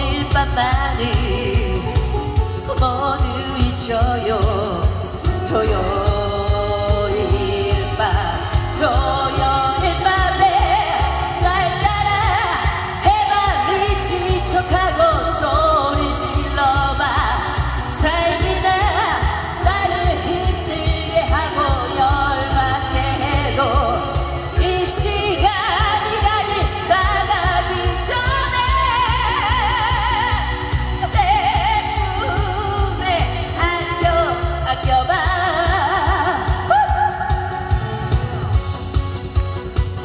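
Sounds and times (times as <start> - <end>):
woman singing into a microphone: 0.0 - 38.6
musical accompaniment with bass beat: 0.0 - 40.0.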